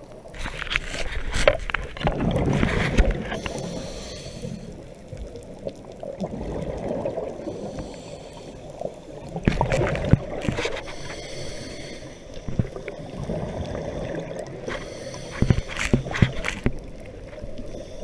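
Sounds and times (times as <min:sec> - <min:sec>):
exhaled bubbles gurgling underwater: 0:00.0 - 0:18.0
low rushing of water: 0:00.0 - 0:18.0.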